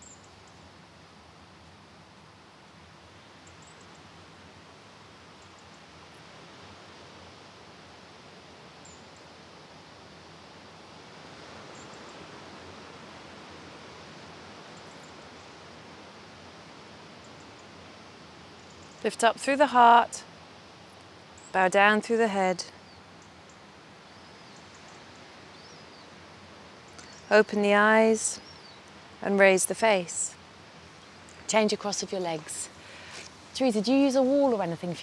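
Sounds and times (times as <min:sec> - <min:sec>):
faint surf: 0:00.0 - 0:35.0.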